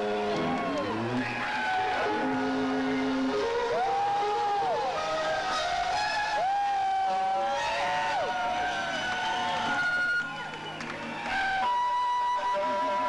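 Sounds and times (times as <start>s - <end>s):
electric guitar bending notes: 0.0s - 6.4s.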